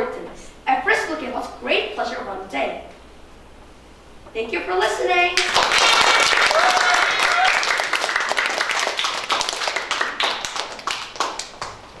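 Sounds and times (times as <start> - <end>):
audience applauding: 5.4 - 12.0.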